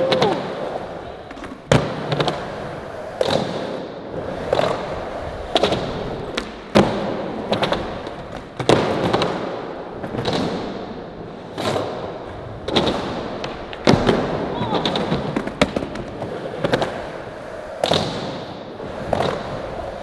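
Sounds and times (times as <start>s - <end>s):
skateboard rolling: 0.0s - 20.0s
skateboard tail pops and landings: 5.5s - 10.8s, 12.6s - 17.0s, 17.8s - 19.5s.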